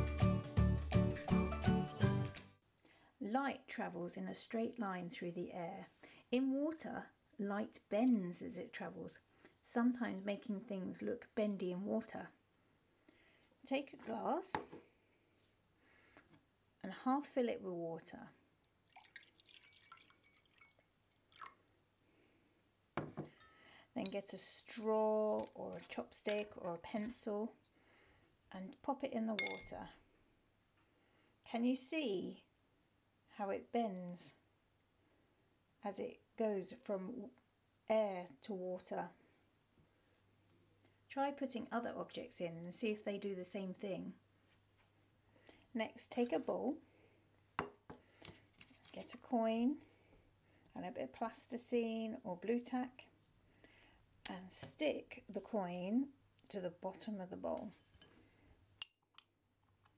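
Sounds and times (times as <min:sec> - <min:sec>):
water trickling into a glass: 0:18.6 - 0:21.8
bowl knocking on wooden table: 0:23.0 - 0:23.4.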